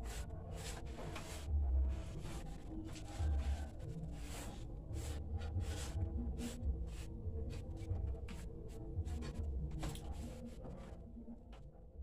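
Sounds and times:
scratchy rubbing: 0.0s - 7.6s
quiet background music: 0.0s - 12.0s.

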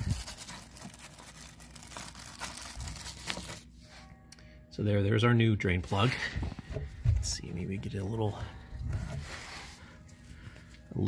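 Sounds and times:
plastic packaging rustling and tearing: 0.0s - 3.7s.

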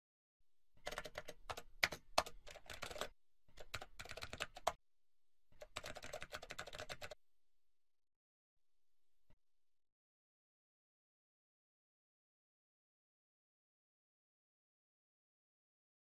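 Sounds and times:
keyboard typing clicks: 0.8s - 4.8s, 5.6s - 7.2s.

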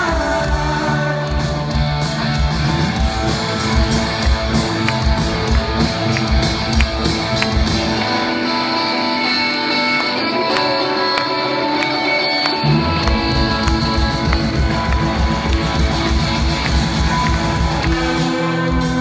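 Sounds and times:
bass and drums: 0.0s - 9.7s, 12.6s - 19.0s
electric guitar: 0.0s - 19.0s.

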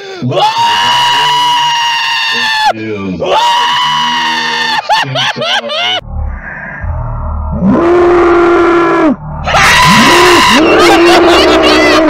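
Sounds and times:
man screaming: 0.0s - 6.0s, 7.7s - 12.0s.

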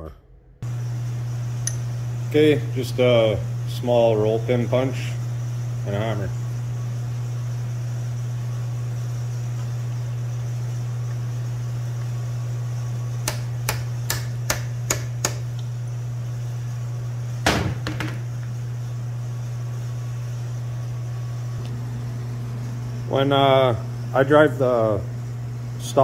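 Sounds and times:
hammer tapping a pin punch: 13.2s - 15.4s.

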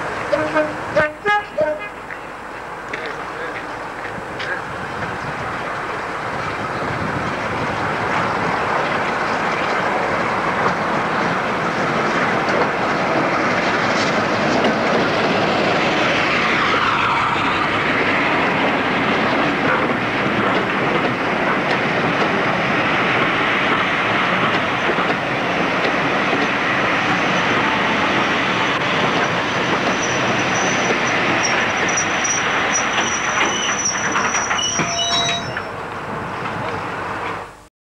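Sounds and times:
train wheels clattering over rail joints: 6.4s - 35.7s
high-pitched brake squeal: 29.8s - 35.8s.

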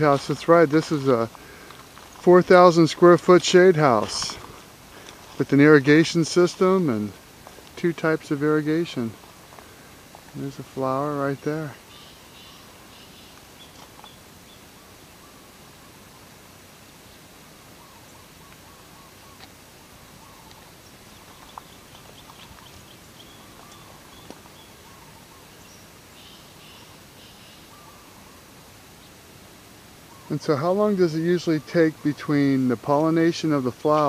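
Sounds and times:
steady low hiss: 0.0s - 34.0s
faint bird chirps: 11.7s - 16.4s, 17.1s - 29.3s, 30.0s - 30.7s.

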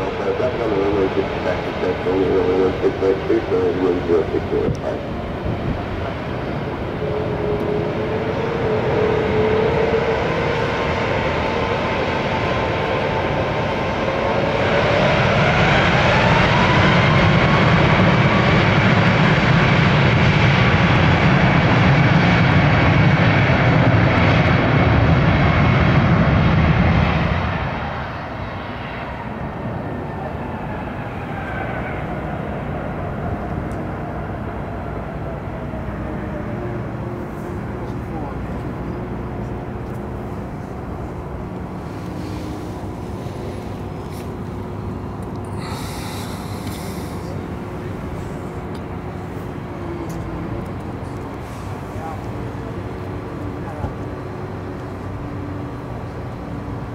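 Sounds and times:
jet engines spooling up: 0.0s - 56.4s
jet engines winding down: 0.0s - 56.9s.

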